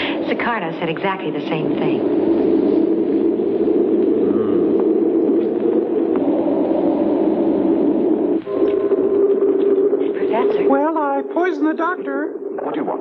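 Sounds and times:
low electronic hum: 0:00.0 - 0:13.0.

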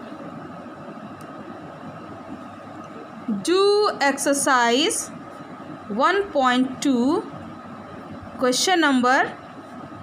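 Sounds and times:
faint rumble and hiss: 0:00.0 - 0:10.0.

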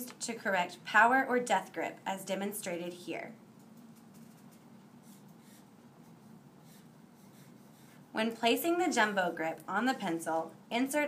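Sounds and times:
pencil scratching on paper: 0:04.2 - 0:08.1.

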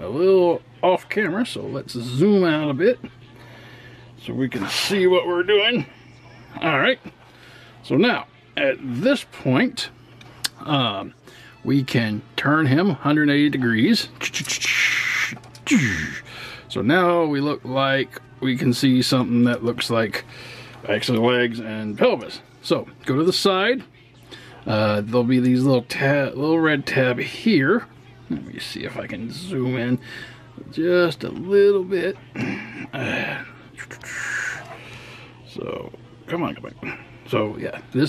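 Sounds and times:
breathy hiss: 0:14.2 - 0:16.7, 0:32.4 - 0:35.4.

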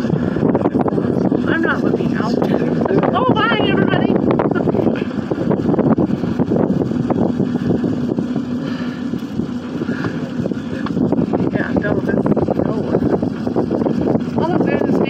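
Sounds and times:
rushing noise in cable car cabin: 0:00.0 - 0:15.0.

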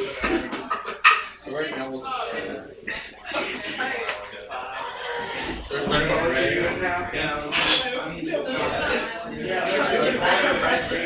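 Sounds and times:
indistinct talk of people: 0:00.0 - 0:11.0.

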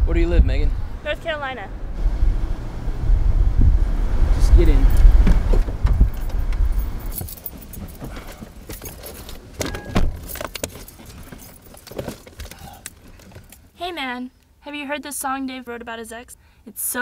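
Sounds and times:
wind rumbling on microphone: 0:00.0 - 0:08.3
light clicks and clatter: 0:04.9 - 0:13.6.

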